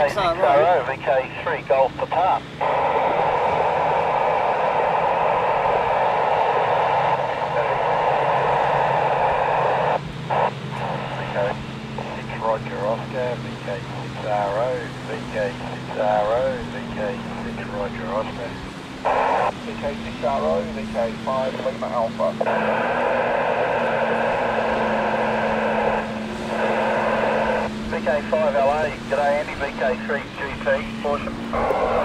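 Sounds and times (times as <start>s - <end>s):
distorted radio voice: 0.0s - 32.0s
radio static hiss: 0.0s - 32.0s.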